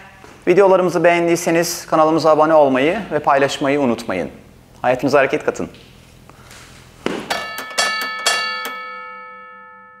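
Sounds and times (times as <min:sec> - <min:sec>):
bell-like chimes: 0:07.5 - 0:10.0.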